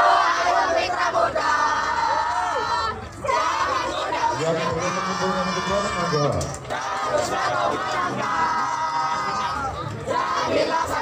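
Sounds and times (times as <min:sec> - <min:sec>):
group chanting a cheer: 0:00.0 - 0:06.0, 0:06.6 - 0:11.0.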